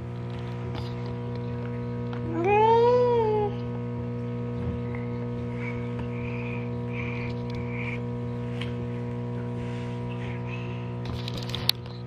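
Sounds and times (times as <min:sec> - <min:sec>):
toy lightsaber buzzing hum: 0:00.0 - 0:12.0.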